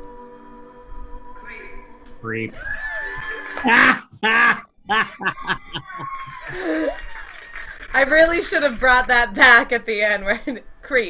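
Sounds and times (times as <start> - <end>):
people laughing: 2.6 - 8.2.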